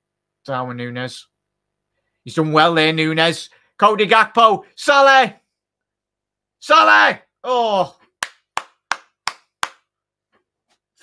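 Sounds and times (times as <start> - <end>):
person clapping hands: 8.2 - 9.9.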